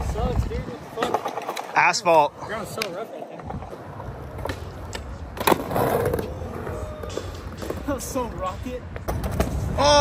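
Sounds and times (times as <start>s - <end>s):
skateboard scraping: 0.0s - 9.8s
skateboard wheels rolling: 0.0s - 10.0s
skateboard clacking: 0.1s - 8.3s.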